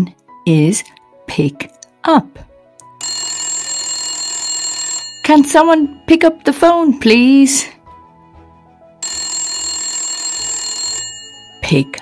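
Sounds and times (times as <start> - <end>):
telephone ringing: 3.0 - 6.4, 9.0 - 12.0.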